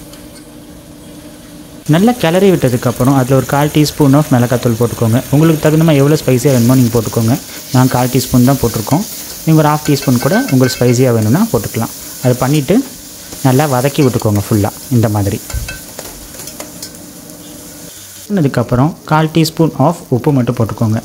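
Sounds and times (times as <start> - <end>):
onion and tomato frying in oil: 0.0 - 21.0
steel ladle stirring: 8.7 - 11.5, 15.4 - 17.0.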